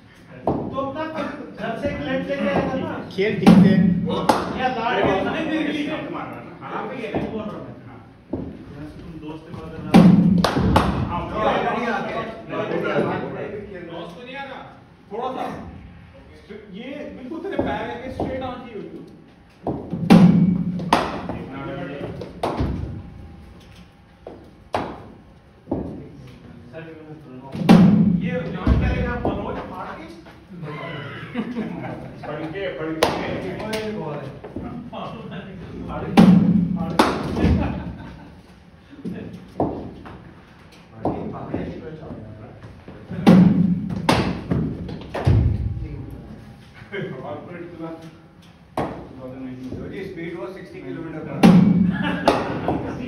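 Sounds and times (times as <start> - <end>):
voices: 0.2 - 23.0, 25.6 - 40.2.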